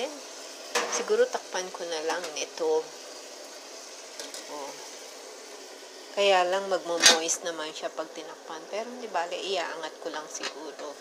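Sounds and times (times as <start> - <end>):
chicken sizzling in hot oil: 0.0 - 11.0.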